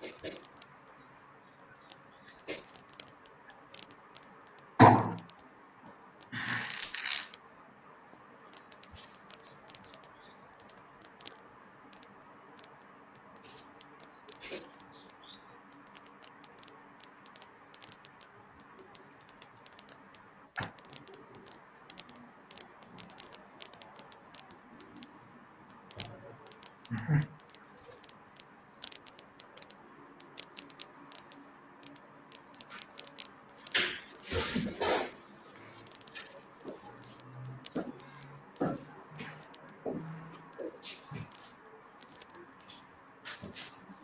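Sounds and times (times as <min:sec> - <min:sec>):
computer mouse clicks: 0:01.6 - 0:05.5, 0:08.5 - 0:34.4, 0:35.2 - 0:39.8.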